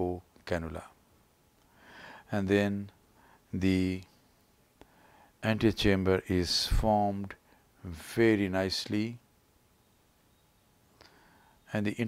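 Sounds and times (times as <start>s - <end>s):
man narrating: 0.0s - 1.0s, 2.3s - 2.9s, 3.6s - 4.1s, 5.4s - 9.2s, 11.7s - 12.0s.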